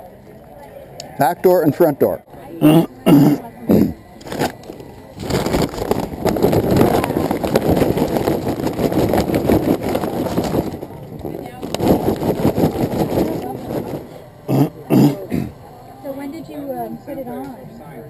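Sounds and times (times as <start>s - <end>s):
charcoal briquettes clattering: 4.2s - 14.0s
paper bag rustling: 4.2s - 14.0s.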